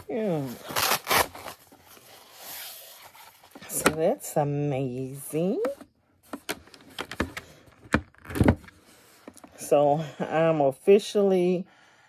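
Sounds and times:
velcro strap ripping open: 0.3 - 1.7.

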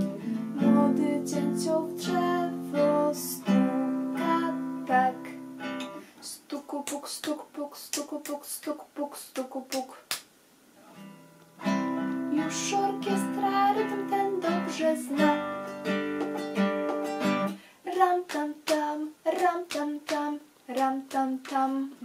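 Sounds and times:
classical guitar strummed chords: 0.0 - 6.0, 11.0 - 17.6.

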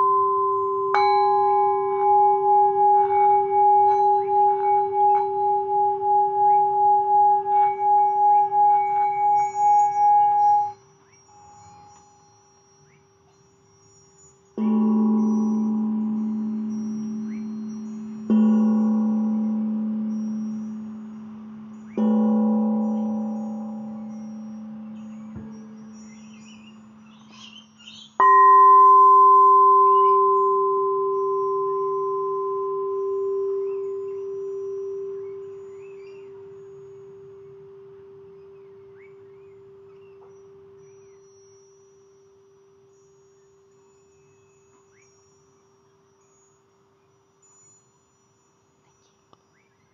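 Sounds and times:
mallet striking metal instrument: 0.0 - 10.8, 14.6 - 41.6
singing bowl ringing: 0.0 - 49.9.

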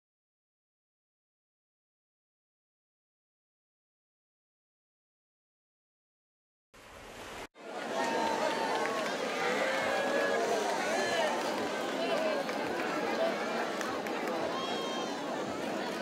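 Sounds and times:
crowd talking and calling out: 7.6 - 16.0.

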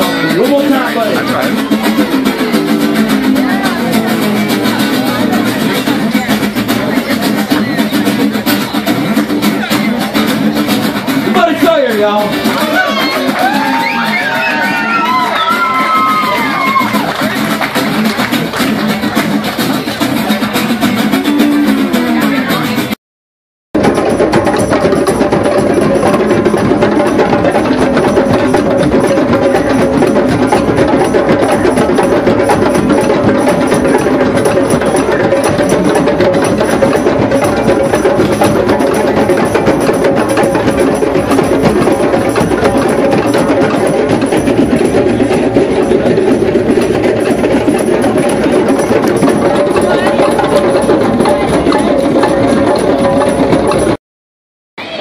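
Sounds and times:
hand drums playing together: 0.0 - 23.0, 23.8 - 54.0.

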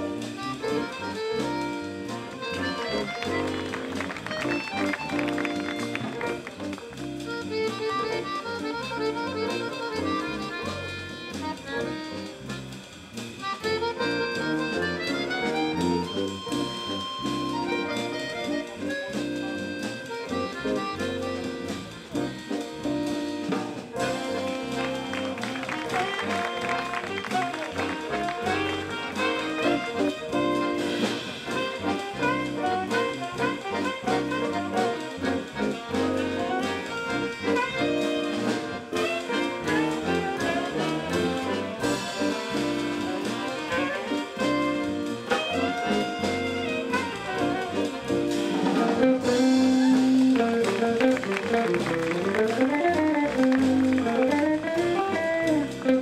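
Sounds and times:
accordion: 0.0 - 56.0
bass guitar: 0.0 - 56.0
electric guitar: 0.0 - 56.0
saxophone: 0.0 - 56.0.

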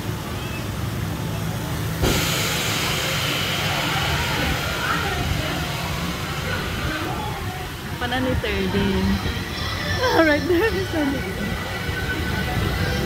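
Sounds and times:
crowd chatter: 0.0 - 13.0
loud steady hiss: 0.0 - 13.0.

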